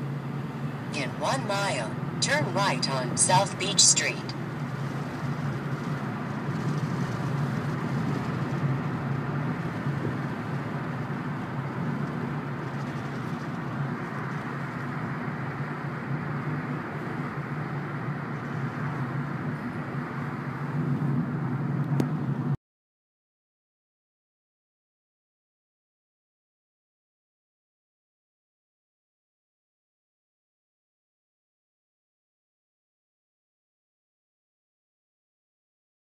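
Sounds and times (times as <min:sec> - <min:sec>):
car engine and tyre noise: 0:00.0 - 0:22.6.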